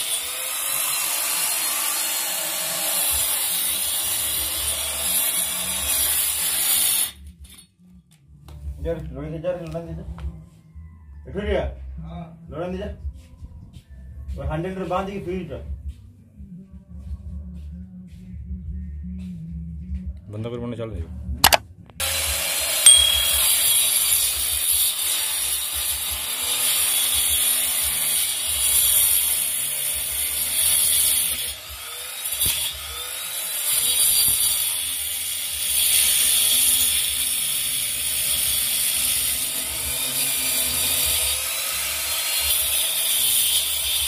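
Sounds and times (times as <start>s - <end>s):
angle grinder cutting brick: 0.0s - 7.2s, 22.5s - 44.0s.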